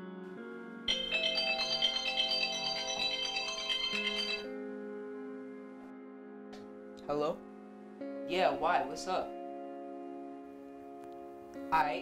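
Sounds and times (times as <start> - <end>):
soft background music: 0.0 - 12.0
phone ringtone: 0.9 - 4.7.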